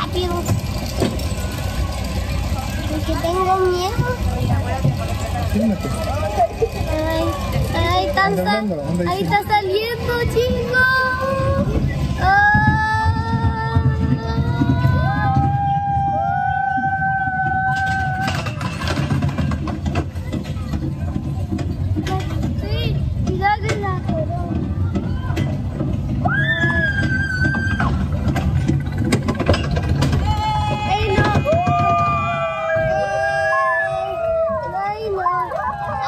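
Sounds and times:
roller coaster rumble: 0.0s - 36.0s
track clacks: 0.0s - 36.0s.

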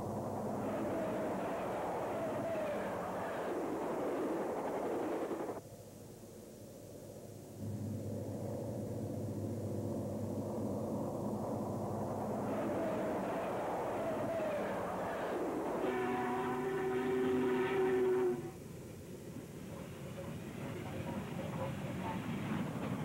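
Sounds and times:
diesel train rumbling past: 0.0s - 5.6s, 7.6s - 23.0s
train horn falling in pitch: 15.8s - 18.6s.

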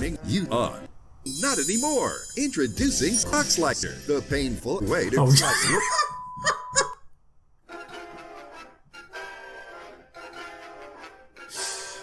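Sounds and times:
music: 0.0s - 5.4s, 7.6s - 12.0s
man laughing: 5.2s - 6.9s.

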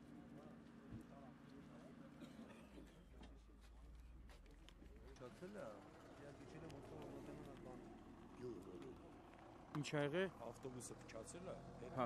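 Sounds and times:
distant men's voices talking low: 0.0s - 12.0s.

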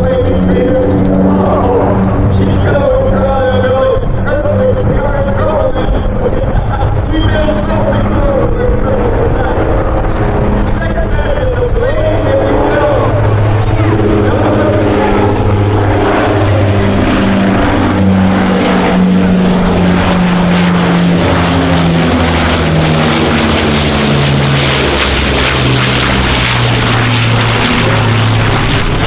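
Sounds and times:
flying boat engines droning overhead: 0.0s - 29.0s.

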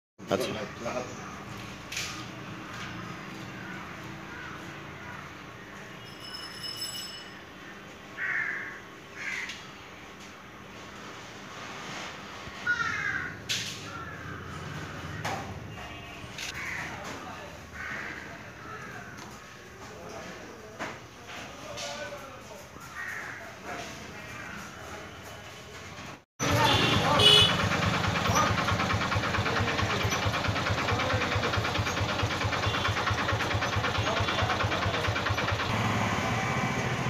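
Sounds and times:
bird cawing: 2.7s - 5.8s, 7.7s - 9.8s, 12.6s - 19.7s, 22.8s - 23.6s, 26.4s - 35.6s
crow cawing: 3.4s - 5.4s, 8.2s - 9.7s, 12.6s - 15.5s, 16.5s - 19.6s, 22.8s - 23.6s.

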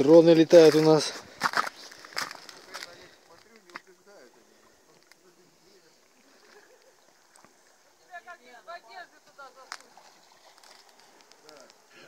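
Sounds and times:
soft hiss: 0.8s - 12.0s.

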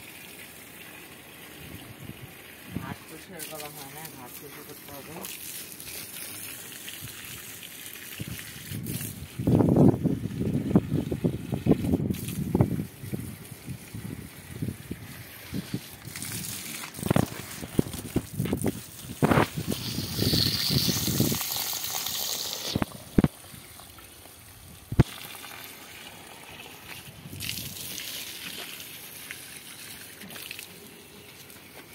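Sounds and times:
hose water splashing on soil: 0.0s - 31.9s.

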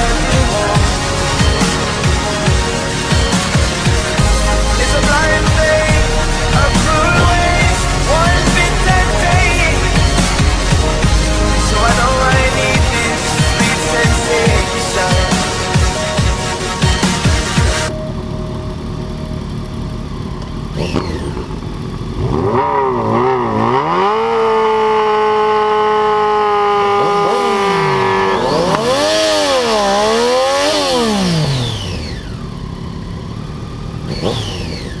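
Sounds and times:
electronic music: 0.0s - 20.4s, 26.4s - 31.2s
motorcycle engine revving: 0.0s - 35.0s.

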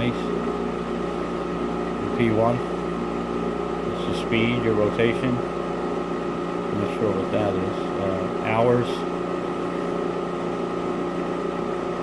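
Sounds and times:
machine hum with soft rush: 0.0s - 12.0s.

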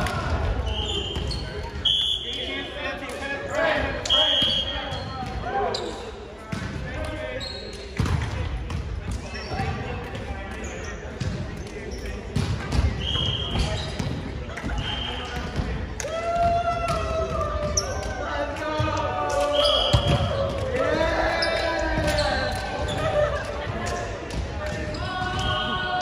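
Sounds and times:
players chattering: 0.0s - 26.0s.

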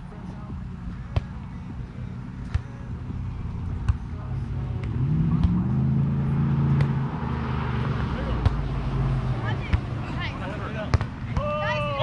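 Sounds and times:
car driving past: 4.4s - 10.6s
volleyball being hit: 4.8s - 5.8s, 6.7s - 7.1s, 8.4s - 8.7s, 10.8s - 11.5s.

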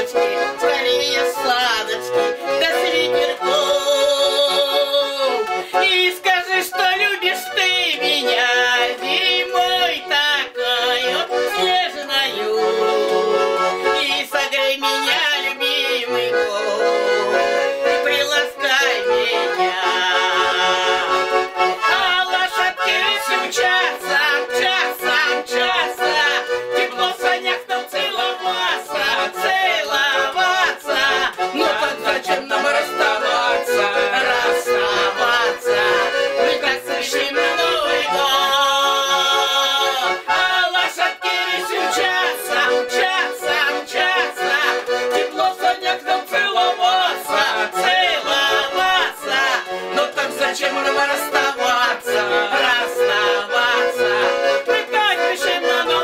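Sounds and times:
button accordion playing folk song: 0.0s - 56.0s
man singing: 0.0s - 56.0s
woman singing: 0.0s - 56.0s.

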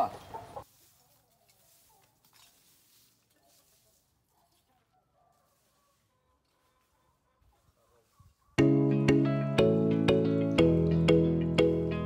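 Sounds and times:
chicken clucking: 0.0s - 2.2s.

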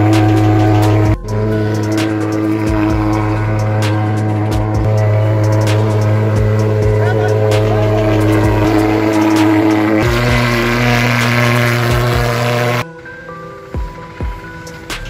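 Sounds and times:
fogging machine buzzing drone: 0.0s - 12.8s.

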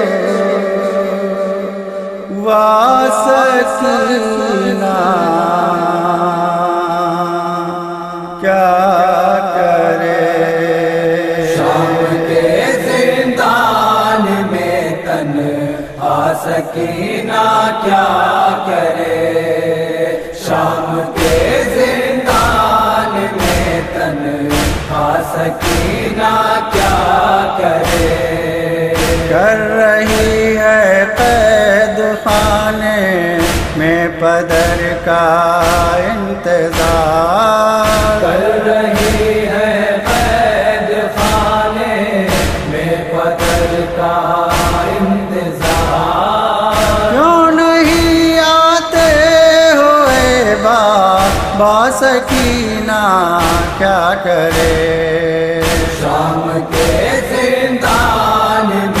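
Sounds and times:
voices chanting a lament: 0.0s - 59.0s
heavy beat: 20.4s - 59.0s.

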